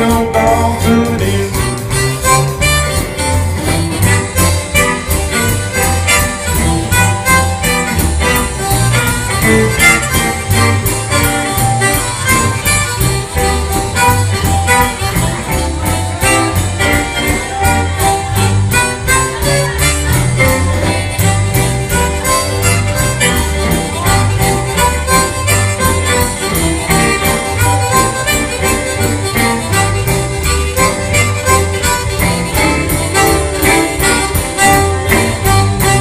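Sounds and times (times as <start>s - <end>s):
live rock band instrumental: 0.0s - 36.0s.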